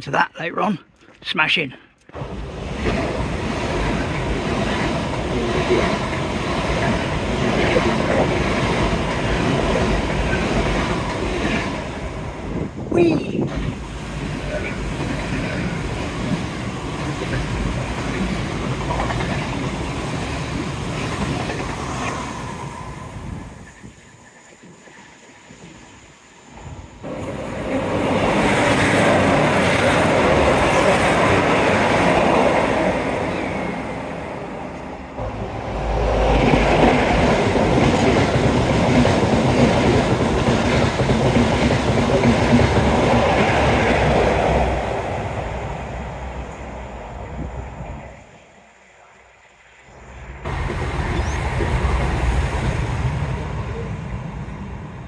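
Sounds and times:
train passing: 0:02.1 - 0:55.0.

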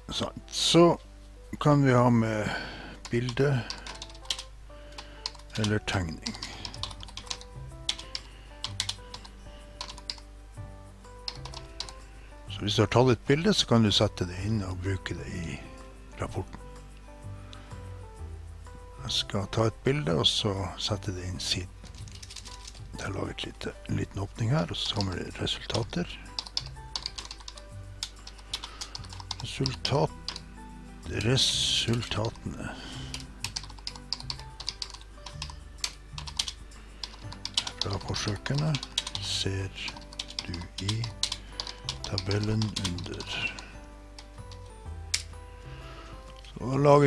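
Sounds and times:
soft background music: 0:00.0 - 0:47.0.

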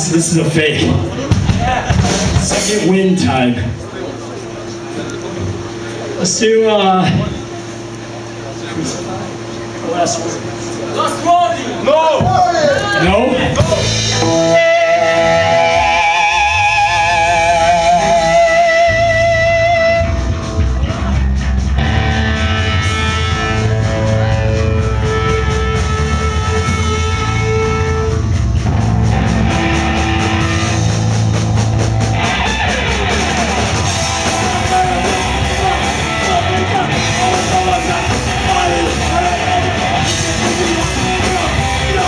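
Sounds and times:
hardcore band playing loudly: 0:00.0 - 0:09.8, 0:10.4 - 0:42.0
wavering electric guitar line: 0:12.7 - 0:42.0.

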